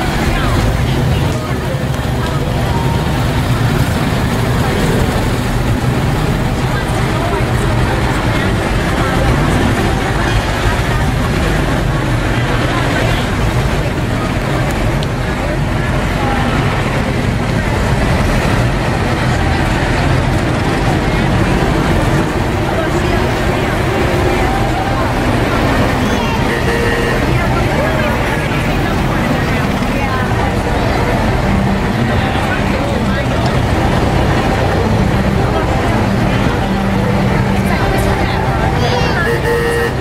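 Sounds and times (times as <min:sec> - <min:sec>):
crowd chatter: 0:00.0 - 0:40.0
old car engines running: 0:00.0 - 0:40.0.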